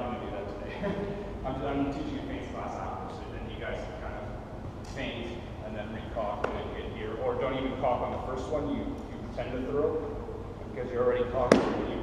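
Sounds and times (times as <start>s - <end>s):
sharp knock: 11.4s - 12.0s.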